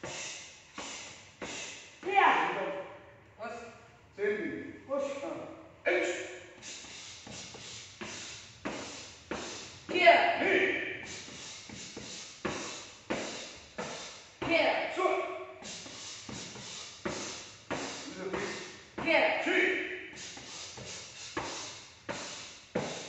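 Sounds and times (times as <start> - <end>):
person shouting: 9.9 - 11.0, 19.1 - 19.9.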